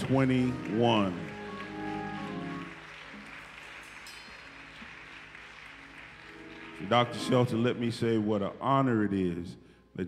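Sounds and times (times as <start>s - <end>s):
soft scattered notes: 0.0s - 9.3s.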